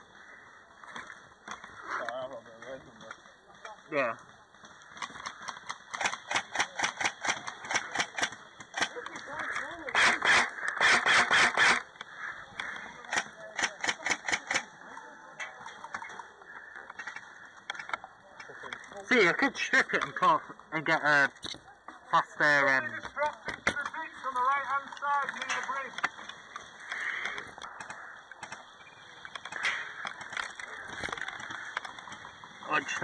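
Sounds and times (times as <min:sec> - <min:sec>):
airsoft guns firing: 0:04.9 - 0:11.9, 0:12.7 - 0:14.8.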